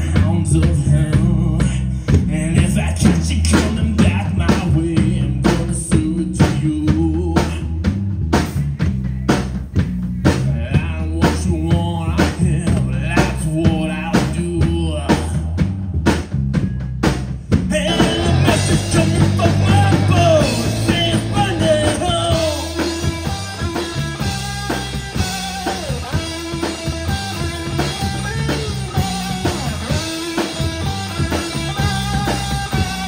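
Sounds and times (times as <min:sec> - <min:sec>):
man singing: 0:00.0 - 0:07.9, 0:10.4 - 0:15.9, 0:17.6 - 0:26.6, 0:27.6 - 0:33.0
drum kit beat: 0:00.0 - 0:33.0
electric bass: 0:00.0 - 0:33.0
electric guitar: 0:17.6 - 0:33.0.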